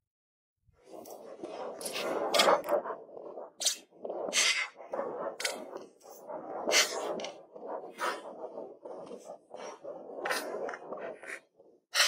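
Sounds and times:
sharp rock scrapes: 0:01.0 - 0:02.9.

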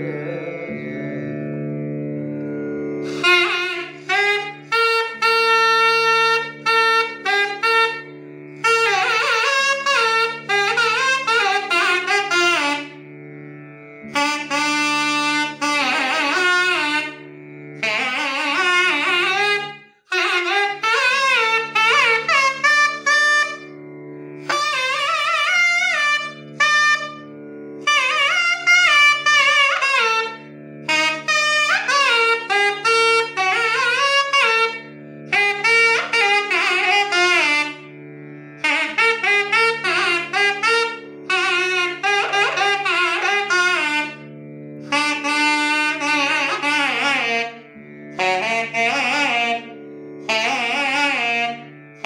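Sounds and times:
nadaswaram melody: 0:00.0 - 0:52.0.

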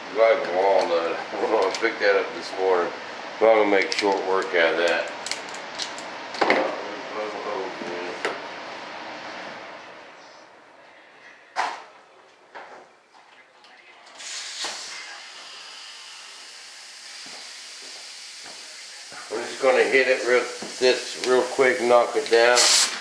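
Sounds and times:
power sander hissing on wood: 0:14.6 - 0:23.0.

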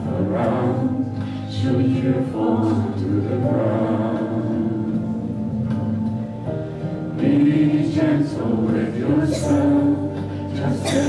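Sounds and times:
woman and men singing together: 0:07.2 - 0:11.0.

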